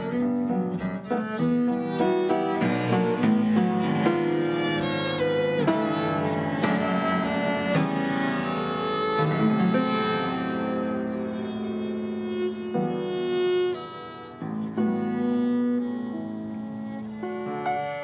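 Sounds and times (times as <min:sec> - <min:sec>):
pianoforte accompaniment: 0:00.0 - 0:18.0.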